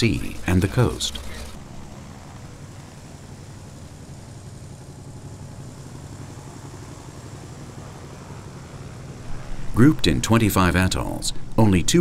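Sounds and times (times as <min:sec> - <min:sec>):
propeller aircraft engine drone: 0:00.0 - 0:12.0.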